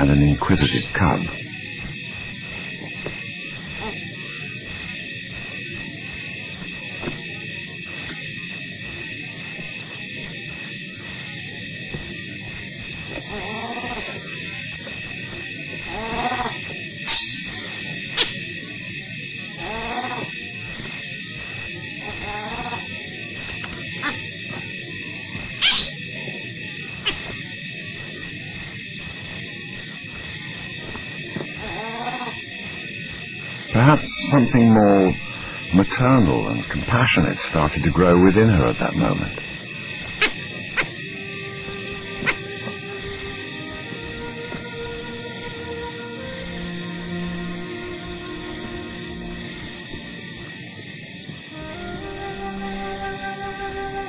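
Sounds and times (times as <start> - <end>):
high-pitched drone: 17.0 - 18.6, 33.7 - 39.5
drawn-out animal calls: 22.0 - 22.9, 24.0 - 24.3, 25.6 - 26.0.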